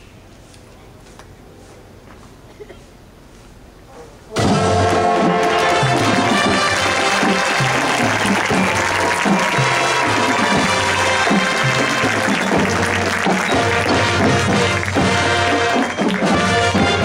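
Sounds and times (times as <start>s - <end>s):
marching band playing: 4.3s - 17.0s
crowd applause: 4.4s - 17.0s.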